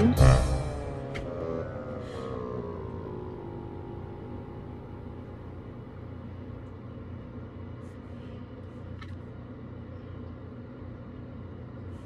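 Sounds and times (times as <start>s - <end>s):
held musical tone: 0.0s - 6.6s
low background rumble: 0.0s - 12.0s.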